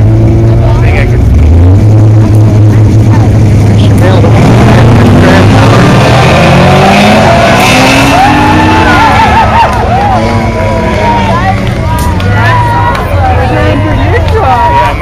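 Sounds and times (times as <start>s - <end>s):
drag car engine accelerating: 0.0s - 15.0s.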